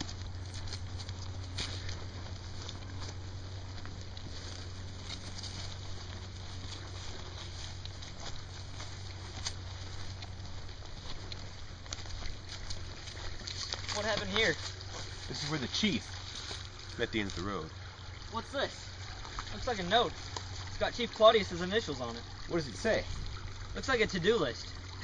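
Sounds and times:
small crackles: 0:00.0 - 0:18.2, 0:18.8 - 0:20.9
footsteps through grass and leaves: 0:00.0 - 0:25.0
steady low rumble: 0:00.0 - 0:25.0.

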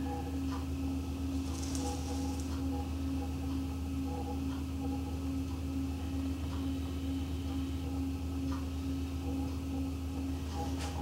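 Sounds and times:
potter's wheel motor humming: 0:00.0 - 0:11.0.

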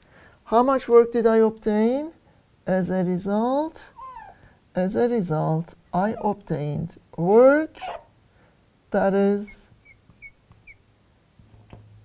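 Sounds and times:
marker squeaking on glass: 0:03.9 - 0:04.4, 0:06.0 - 0:06.4, 0:07.8 - 0:08.1, 0:09.4 - 0:10.8.

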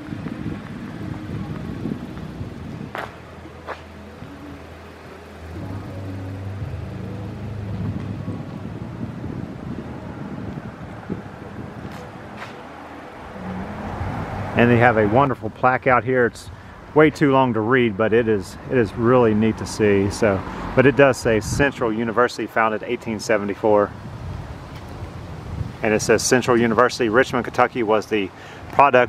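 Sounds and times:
vehicle engine hum: 0:00.0 - 0:29.0.

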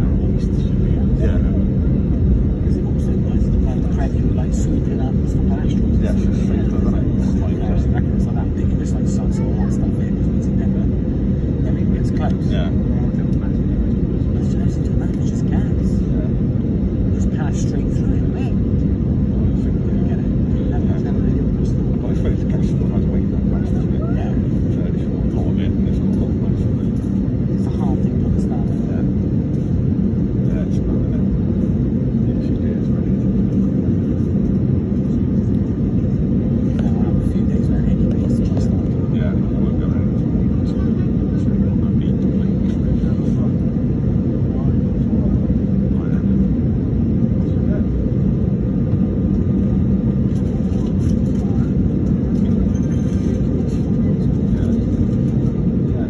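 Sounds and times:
airliner engines idling: 0:00.0 - 0:56.0
faint indistinct voices: 0:00.0 - 0:56.0.

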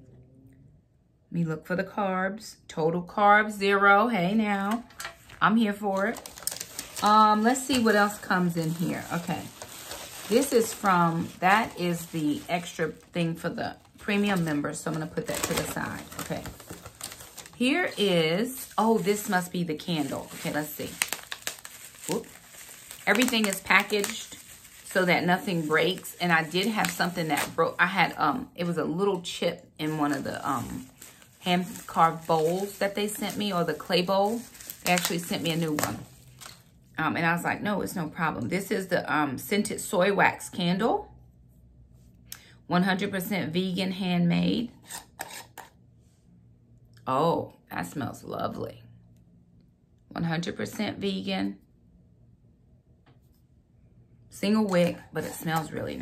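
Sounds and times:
packaging crinkling: 0:04.8 - 0:28.3, 0:29.8 - 0:36.8.

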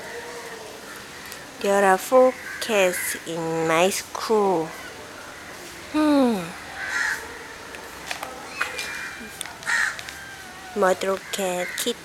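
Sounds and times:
crow cawing: 0:02.3 - 0:03.2, 0:06.7 - 0:07.5, 0:08.5 - 0:12.0.

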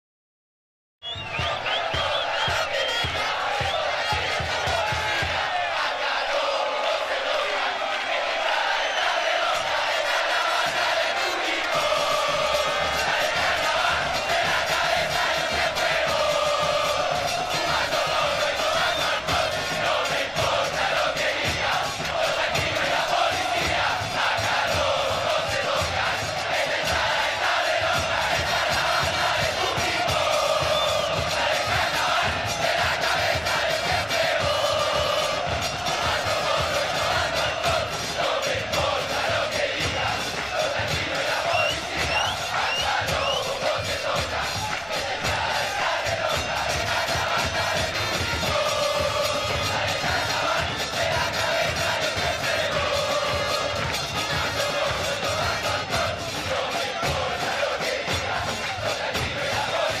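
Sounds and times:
crowd singing in unison: 0:01.0 - 1:00.0
music with steady beat: 0:01.3 - 1:00.0.

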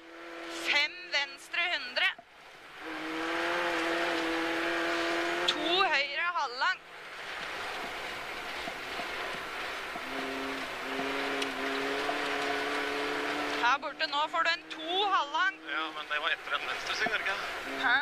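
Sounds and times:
car engine revving: 0:00.0 - 0:18.0
road noise rushing: 0:00.0 - 0:18.0.

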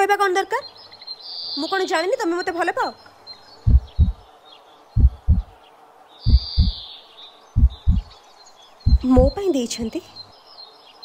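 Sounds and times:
birds chirping faintly: 0:00.0 - 0:11.0
heartbeat thumps: 0:03.7 - 0:04.2, 0:05.0 - 0:05.5, 0:06.3 - 0:06.8, 0:07.6 - 0:08.1, 0:08.9 - 0:09.4.

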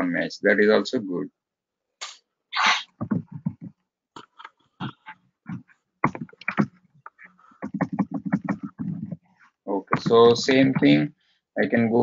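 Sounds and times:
computer keyboard typing: 0:06.0 - 0:06.8, 0:07.6 - 0:09.2, 0:09.9 - 0:11.0.

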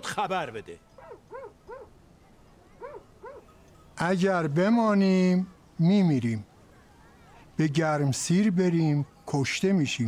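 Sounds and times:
dog whimpering yelps: 0:01.0 - 0:01.9, 0:02.8 - 0:03.4.

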